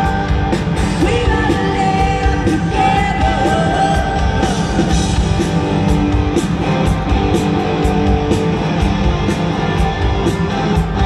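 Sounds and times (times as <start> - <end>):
electric guitar chords: 0.0 - 11.0
steady drum beat: 0.0 - 11.0.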